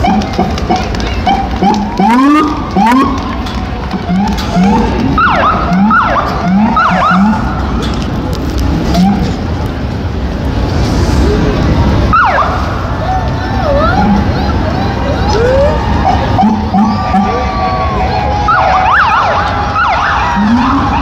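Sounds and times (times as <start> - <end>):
police sirens chirping: 0.0 - 7.8, 8.7 - 9.9, 11.6 - 21.0
vehicle engines rumbling: 0.0 - 21.0.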